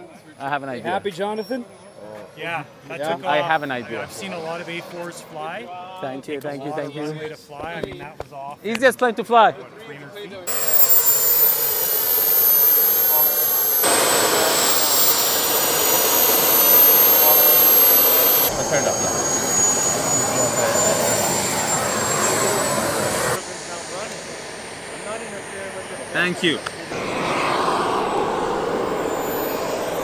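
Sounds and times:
model jet turbine whine: 0:03.0 - 0:06.3, 0:10.5 - 0:30.0.

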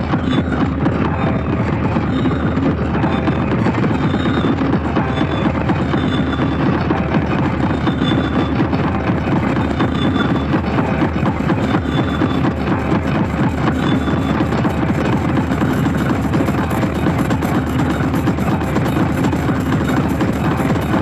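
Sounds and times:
distorted hard electronic music: 0:00.0 - 0:21.0.

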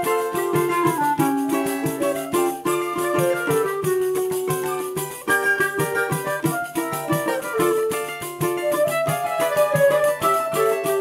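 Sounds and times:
clarinet melody: 0:00.0 - 0:11.0
flute melody: 0:00.0 - 0:11.0
strummed small guitar: 0:00.0 - 0:11.0
tambourine rhythm: 0:00.0 - 0:11.0.

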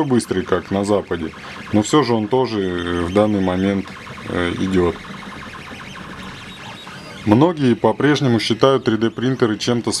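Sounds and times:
steady running hum: 0:00.0 - 0:10.0
stepper motors whining: 0:00.0 - 0:10.0.

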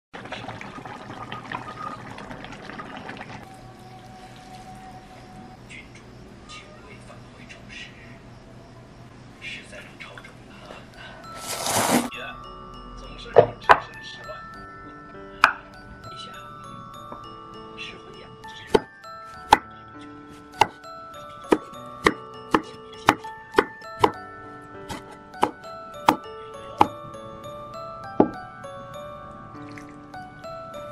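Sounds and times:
broth bubbling in a pot: 0:00.2 - 0:05.0
knife chopping on wooden board: 0:21.5 - 0:24.2, 0:24.9 - 0:26.2.

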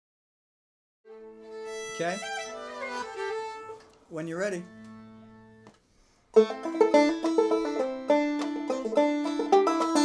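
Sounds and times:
sustained acoustic chord: 0:01.1 - 0:05.7.

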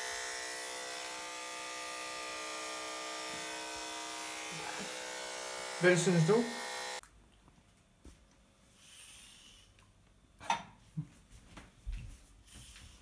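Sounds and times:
electric hair clippers buzzing: 0:00.0 - 0:07.0.

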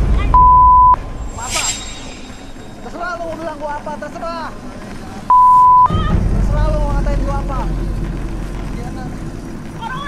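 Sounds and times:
low background rumble: 0:06.0 - 0:10.0.

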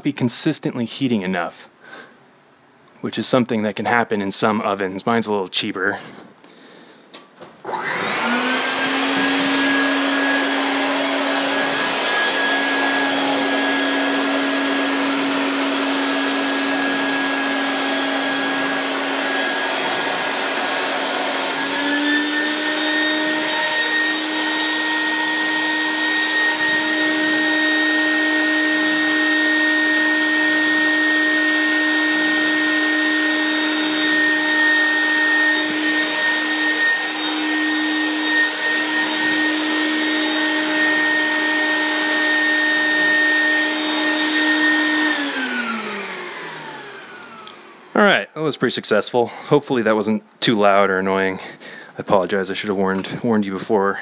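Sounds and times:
shop vacuum running: 0:07.6 - 0:48.3.

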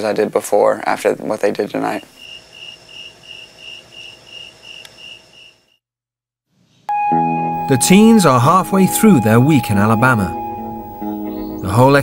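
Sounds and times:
crickets chirping: 0:01.8 - 0:05.8.

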